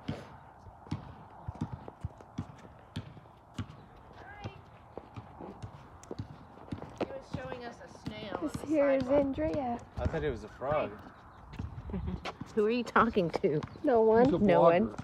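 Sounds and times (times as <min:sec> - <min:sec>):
footsteps on hard surface: 0:00.0 - 0:15.0.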